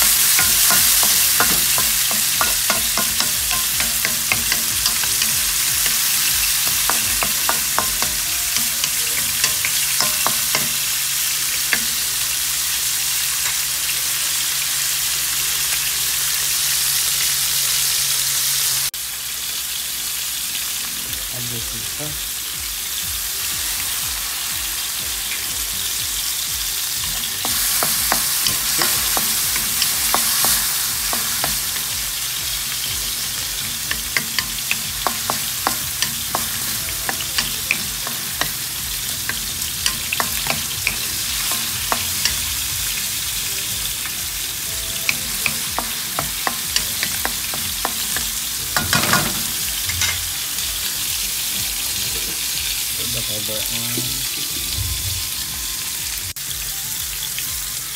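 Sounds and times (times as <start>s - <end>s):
spatula scraping a wok: 0.0s - 12.1s, 26.8s - 43.4s
vegetables sizzling in a wok: 0.0s - 57.9s.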